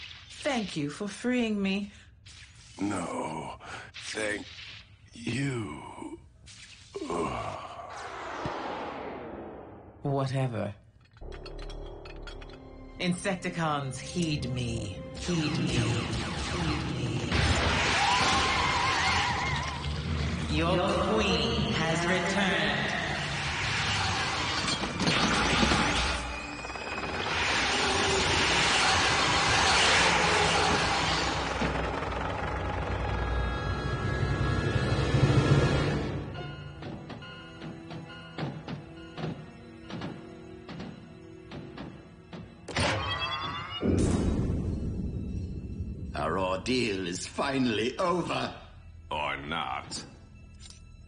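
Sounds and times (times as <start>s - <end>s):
warbling robot-insect screech: 0.0s - 0.7s, 23.2s - 31.6s
dramatic music: 11.2s - 51.0s.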